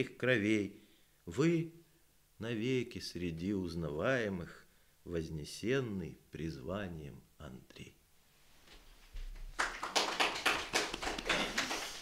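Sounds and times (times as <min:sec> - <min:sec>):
people clapping: 0:09.4 - 0:12.0.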